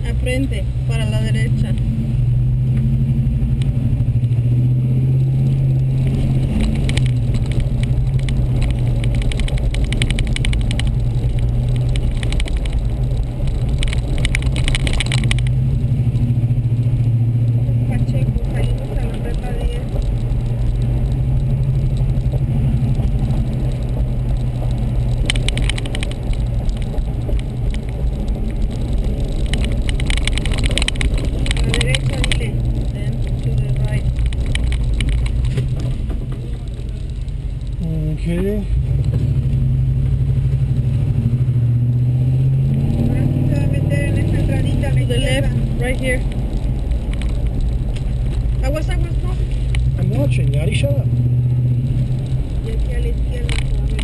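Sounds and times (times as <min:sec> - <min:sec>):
car engine and road hum: 0:00.0 - 0:54.0.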